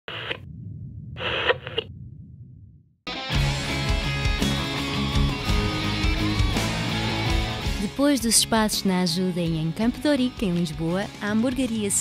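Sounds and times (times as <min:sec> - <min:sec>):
static-like noise bursts: 0:00.1 - 0:00.4, 0:01.2 - 0:01.9
steady low rumble: 0:00.4 - 0:03.0.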